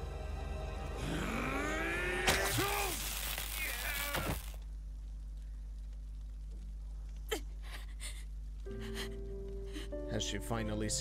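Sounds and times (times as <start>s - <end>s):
crashing shattering noise: 2.3s - 4.6s
low steady hum: 4.2s - 11.0s.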